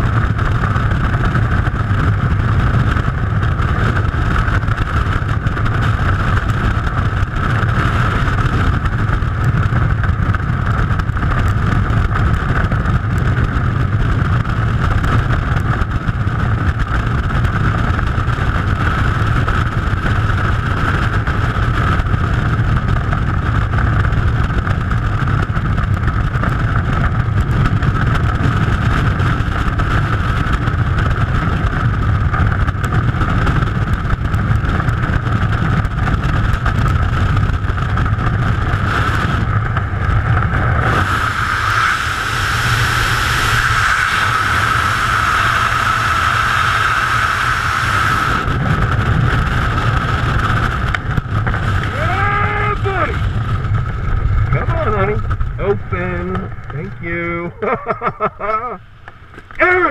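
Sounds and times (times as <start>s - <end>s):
wind roaring on microphone: 0.0s - 59.9s.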